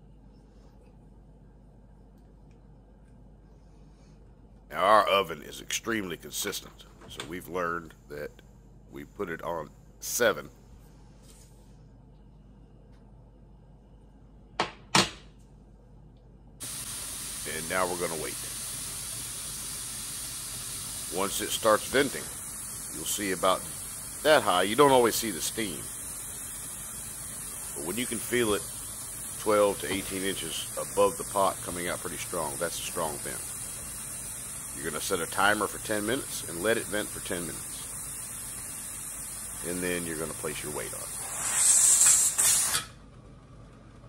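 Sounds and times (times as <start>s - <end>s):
steam hissing from vent pipe: 16.6s - 43.0s.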